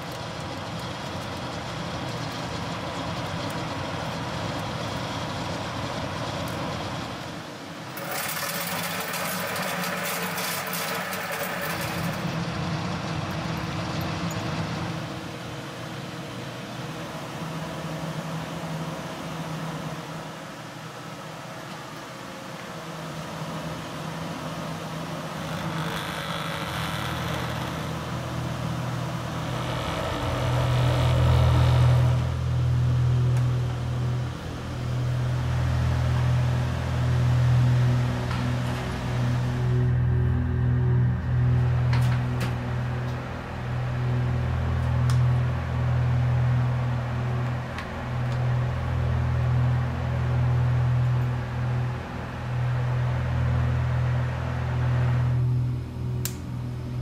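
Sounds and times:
low droning rumble: 25.2 - 57.0.

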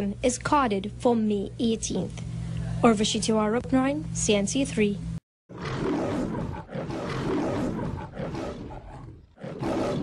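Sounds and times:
big cat roaring: 5.5 - 10.0.

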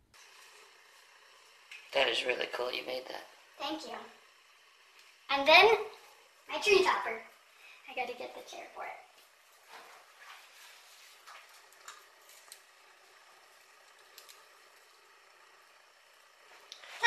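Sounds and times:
faint rustling: 5.4 - 14.5.

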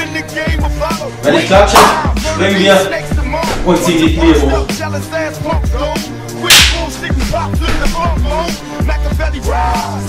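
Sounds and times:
man rapping over a beat: 0.0 - 10.0
sharp hit: 6.5 - 6.9.

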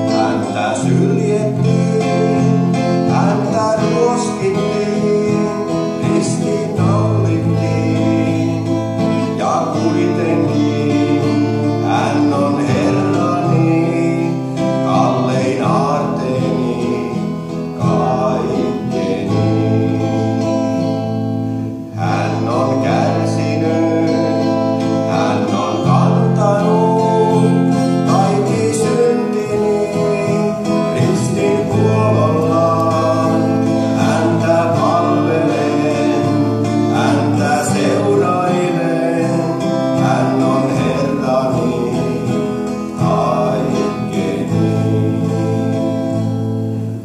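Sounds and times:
man singing: 0.0 - 21.1, 21.8 - 46.3
acoustic guitar: 0.0 - 47.0.

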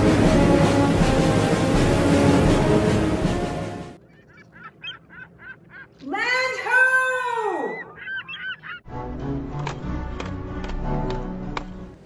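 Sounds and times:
music: 0.0 - 4.0, 8.9 - 12.0
short bird calls: 4.0 - 6.0, 7.6 - 8.8.

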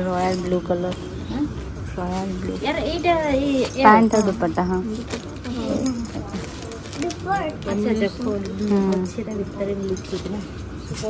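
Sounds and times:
woman speaking: 0.0 - 10.5
fabric and plastic wrapping rustling: 0.0 - 11.0
light jingling clinks: 1.6 - 11.0.

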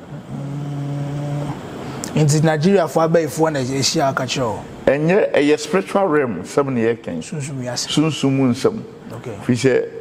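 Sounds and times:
man humming: 0.0 - 1.7.

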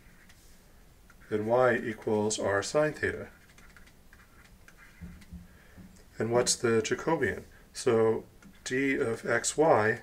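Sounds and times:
stylus tapping on drawing tablet: 4.1 - 6.0.

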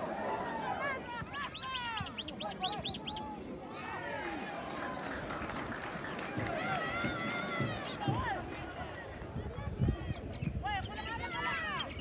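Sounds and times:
bird high repeated calls: 1.4 - 3.3.

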